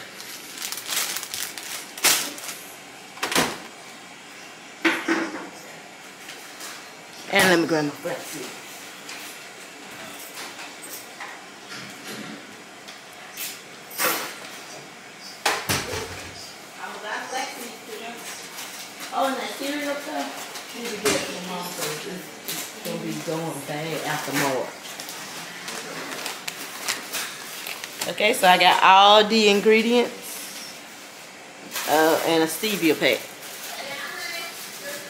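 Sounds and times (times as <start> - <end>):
kitchen knocks and clatters: 4.8 - 5.6, 15.4 - 16.4, 20.2 - 22.8.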